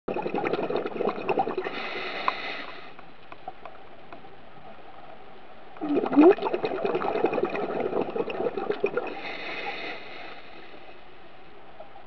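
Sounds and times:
water bubbling and gurgling: 0:00.0 - 0:02.9, 0:05.8 - 0:10.9
steady hiss: 0:01.6 - 0:05.8, 0:09.0 - 0:12.0.

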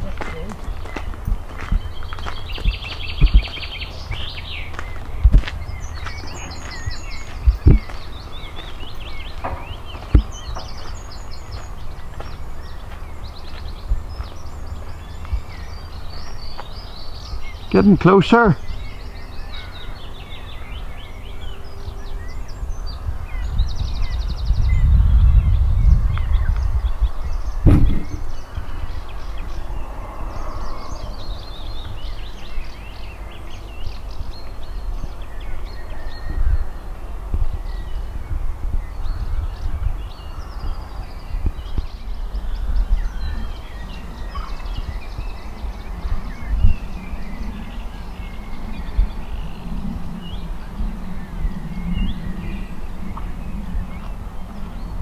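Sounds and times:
small birds chirping: 0:00.0 - 0:55.0
wind rumbling on microphone: 0:00.0 - 0:55.0.

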